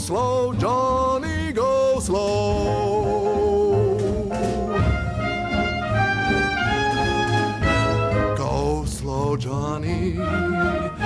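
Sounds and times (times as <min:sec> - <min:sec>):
steady bass: 0:00.0 - 0:11.0
brass playing held notes: 0:04.4 - 0:08.5, 0:10.2 - 0:11.0.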